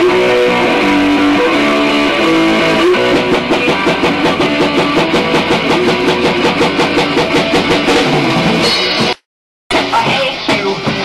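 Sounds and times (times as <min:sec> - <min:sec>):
drum kit fast beat: 0:00.0 - 0:11.0
strummed electric guitar: 0:00.0 - 0:11.0.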